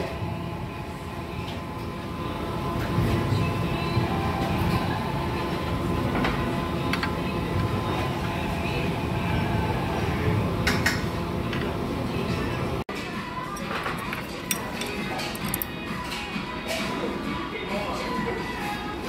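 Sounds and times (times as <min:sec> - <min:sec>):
restaurant low rumble: 0:00.0 - 0:19.0
metal tongs clinking on plates: 0:13.5 - 0:16.3.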